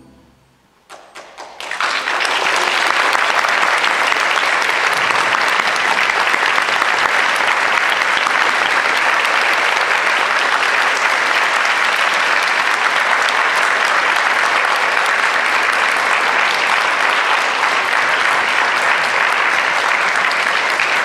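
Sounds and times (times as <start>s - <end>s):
audience applause: 0.9s - 21.0s.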